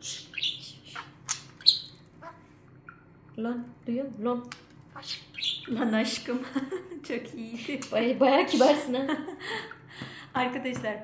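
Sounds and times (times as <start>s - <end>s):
budgerigar chattering: 0.0s - 2.4s, 5.0s - 6.2s.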